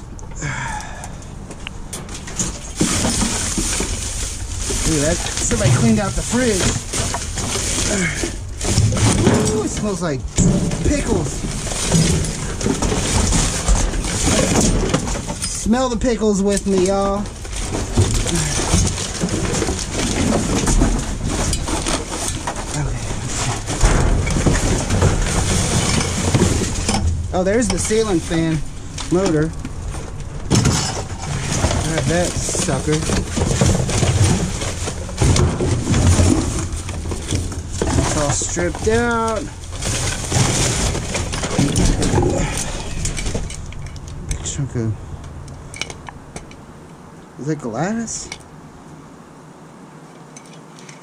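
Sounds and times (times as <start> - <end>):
knocks and thumps: 2.0 - 16.0, 16.6 - 44.6
plastic and cardboard rustling: 2.0 - 45.5.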